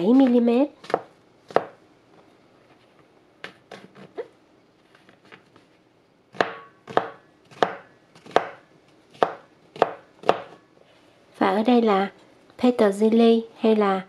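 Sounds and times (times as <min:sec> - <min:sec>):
knife chopping on plastic board: 0:00.2 - 0:01.8, 0:06.3 - 0:10.6.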